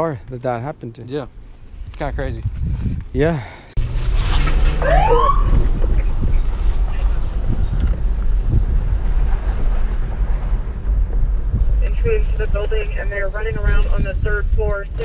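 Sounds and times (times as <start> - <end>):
car engine and road rumble: 0.0 - 15.0
short rising siren whoop: 4.8 - 5.7.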